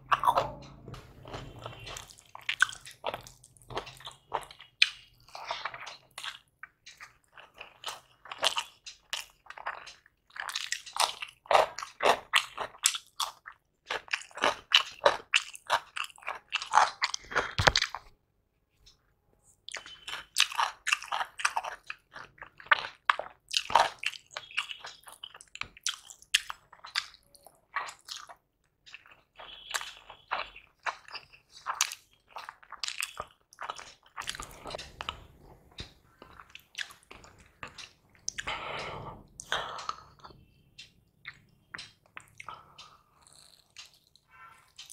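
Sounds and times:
chewing and lip-smacking: 0:00.0 - 0:18.0, 0:19.6 - 0:44.9.

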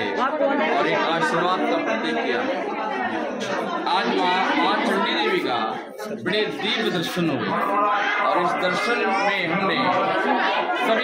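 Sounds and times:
crowd chatter: 0:00.0 - 0:11.0
man talking: 0:03.8 - 0:10.2.

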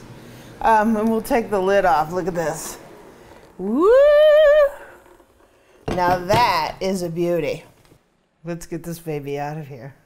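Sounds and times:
woman whooping: 0:03.6 - 0:05.0.

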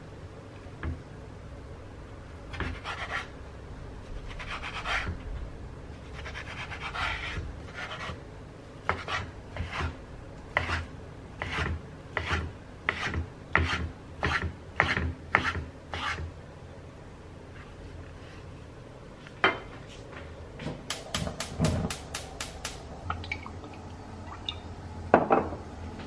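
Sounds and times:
knife sawing through bacon: 0:06.1 - 0:08.2.

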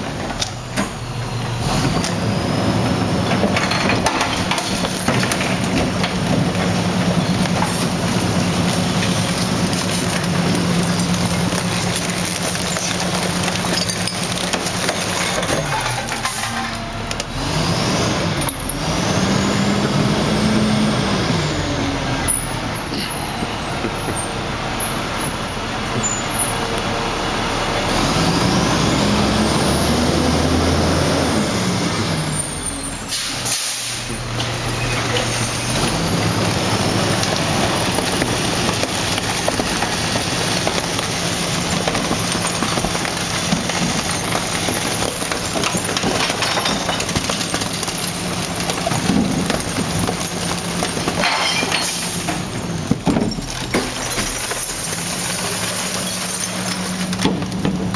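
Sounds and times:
garbage truck diesel engine revving: 0:00.0 - 0:57.9
air brake hiss: 0:33.1 - 0:34.1.

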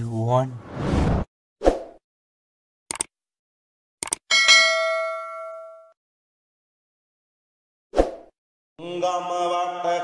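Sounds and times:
bell ding: 0:04.3 - 0:06.0.

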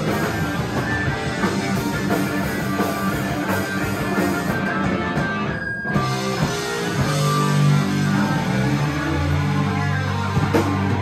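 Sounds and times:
bass guitar: 0:00.0 - 0:11.0
drums: 0:00.0 - 0:11.0
electric guitar: 0:00.0 - 0:11.0.

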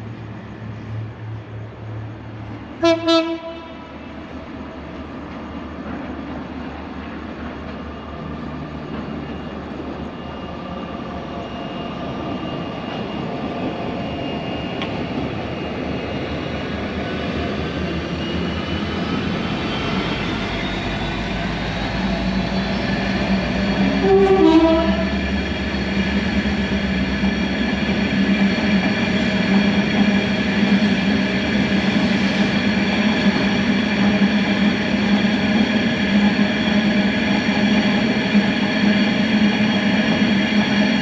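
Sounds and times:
diesel locomotive running: 0:00.0 - 0:41.0
train horn blast: 0:02.8 - 0:03.9, 0:23.9 - 0:25.2.

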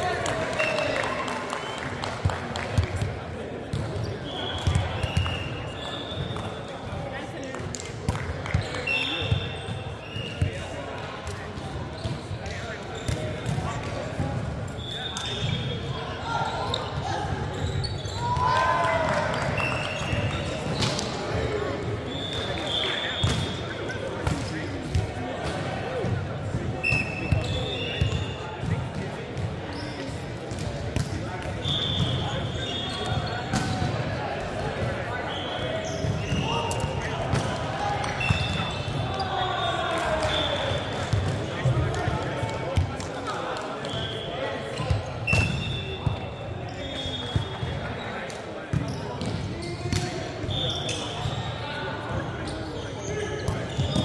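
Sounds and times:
shoes squeaking on wooden court: 0:14.8 - 0:18.5, 0:29.4 - 0:30.3, 0:31.6 - 0:34.0, 0:34.8 - 0:54.0.

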